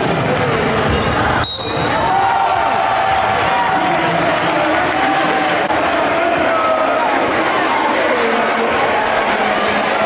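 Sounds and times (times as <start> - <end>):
basketball play on court: 0.0 - 6.8
crowd talking and shouting: 0.0 - 10.0.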